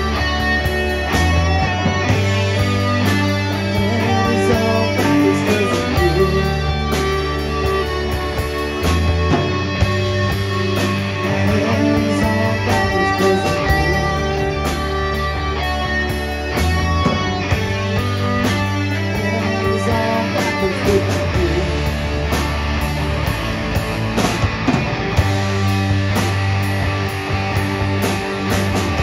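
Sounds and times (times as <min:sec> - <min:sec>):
distorted electric guitars: 0:00.0 - 0:29.0
drum kit beat: 0:00.0 - 0:29.0
electric bass notes: 0:00.0 - 0:29.0.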